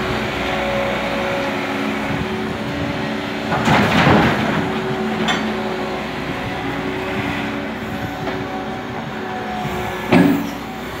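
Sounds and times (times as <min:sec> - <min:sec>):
diesel engine running: 0:00.0 - 0:11.0
loud metal clank: 0:10.1 - 0:10.6.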